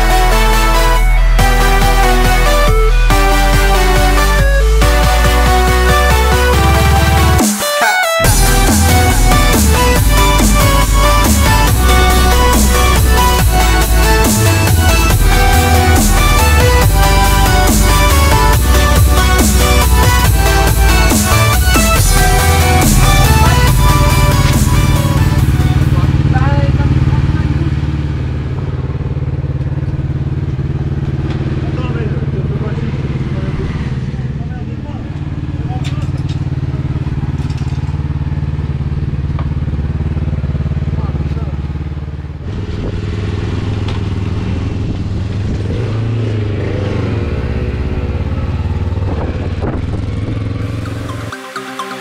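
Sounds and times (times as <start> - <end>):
motorcycle engine idling: 8.2 - 51.2
people talking: 25.6 - 27.9, 31.5 - 36.4, 40.9 - 41.6.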